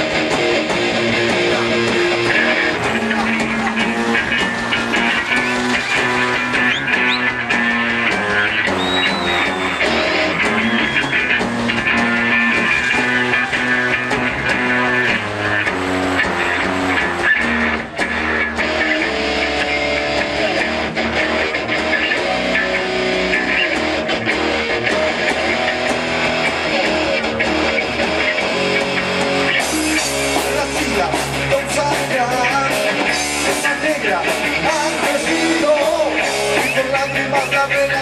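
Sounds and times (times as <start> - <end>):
bass guitar: 0.0 - 38.0
drum kit: 0.0 - 38.0
electric guitar: 0.0 - 38.0.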